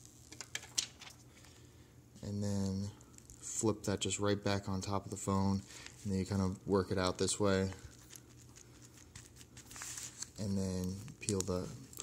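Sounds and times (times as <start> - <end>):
fingertips rustling plastic film: 5.7 - 12.0.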